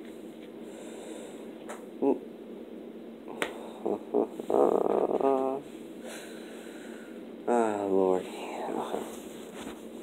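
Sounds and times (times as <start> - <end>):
short low vocal sounds: 2.0 - 2.3, 3.3 - 5.7.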